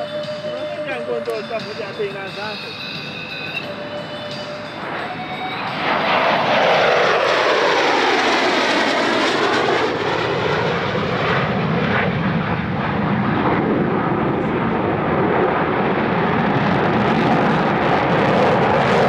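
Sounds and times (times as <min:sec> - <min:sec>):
fighter jets passing: 0:00.0 - 0:19.0.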